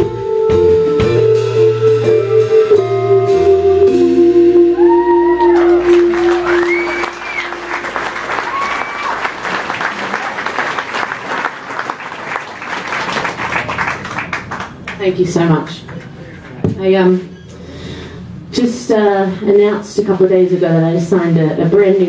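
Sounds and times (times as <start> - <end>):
band holding last note: 1.0 - 9.8
whoops from audience: 4.8 - 10.6
audience applauding and cheering: 4.8 - 15.0.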